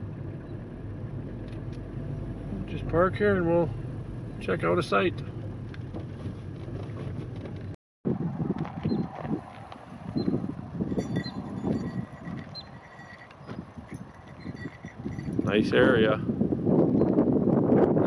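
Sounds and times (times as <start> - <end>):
wind buffeting microphone: 5.5 - 18.0.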